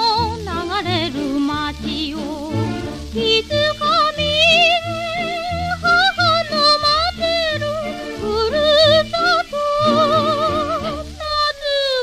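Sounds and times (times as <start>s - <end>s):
rhythmic musical accompaniment: 0.0s - 11.2s
woman singing with vibrato: 0.0s - 12.0s.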